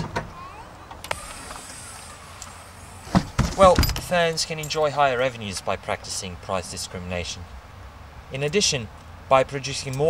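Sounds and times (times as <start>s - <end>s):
high hiss: 1.1s - 3.3s.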